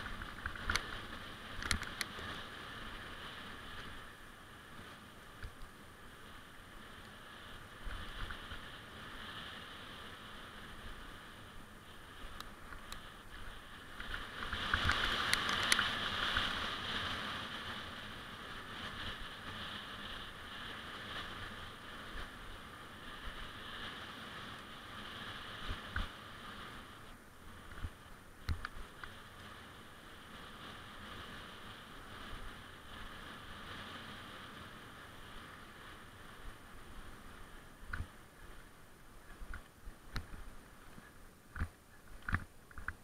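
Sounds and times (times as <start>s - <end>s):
bike tyres rolling on dirt: 0.0s - 43.0s
wind rushing over camera: 0.0s - 43.0s.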